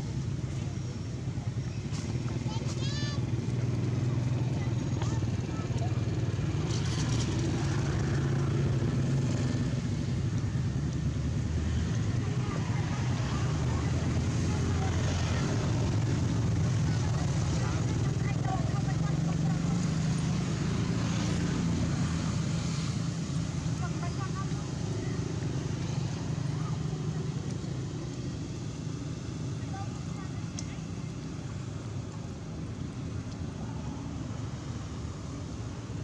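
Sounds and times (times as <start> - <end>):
faint people talking: 0.0 - 36.0
low engine rumble: 0.0 - 36.0.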